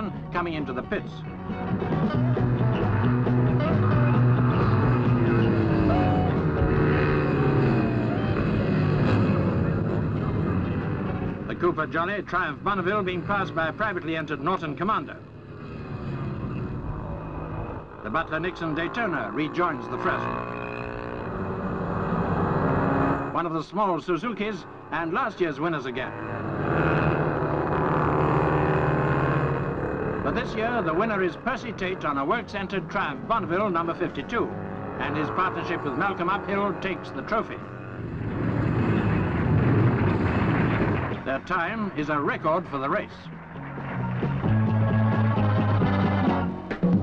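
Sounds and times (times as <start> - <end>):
racing motorcycle engines: 0.0 - 47.0.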